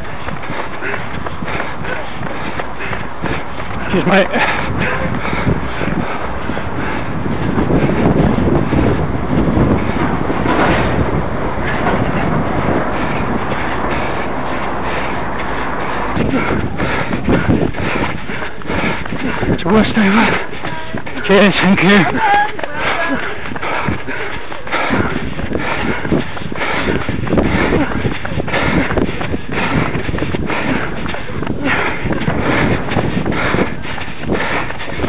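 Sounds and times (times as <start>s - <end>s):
wind and handling rumble: 0.0s - 35.0s
indistinct voices: 0.4s - 35.0s.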